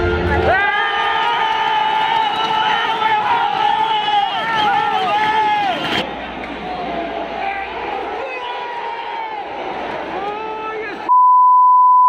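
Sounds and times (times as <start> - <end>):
crowd noise: 0.0 - 11.1
censor bleep: 11.1 - 12.0.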